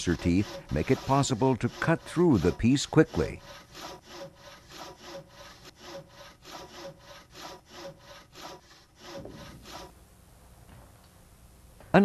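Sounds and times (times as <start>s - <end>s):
hand saw cutting wood: 0.0s - 10.0s.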